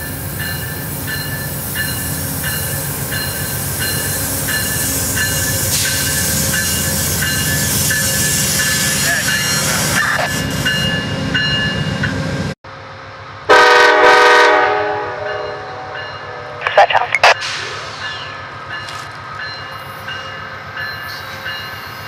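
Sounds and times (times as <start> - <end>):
locomotive bell ringing: 0.0 - 12.2, 15.2 - 16.6, 18.0 - 22.0
diesel locomotive engine rumble: 0.0 - 22.0.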